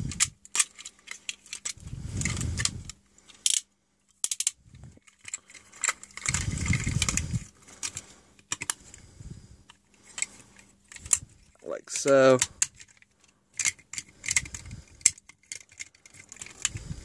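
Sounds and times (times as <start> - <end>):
plastic toy parts clicking: 0.0 - 8.8, 9.7 - 17.0
plastic rubbing and rattling: 0.0 - 9.0, 9.7 - 17.0.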